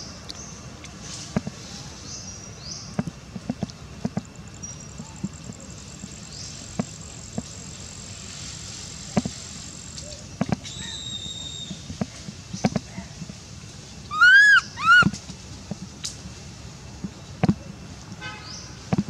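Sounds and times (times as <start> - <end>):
clicks and rustles: 2.9 - 10.8
baby monkey high calls: 10.0 - 11.7, 14.1 - 15.2.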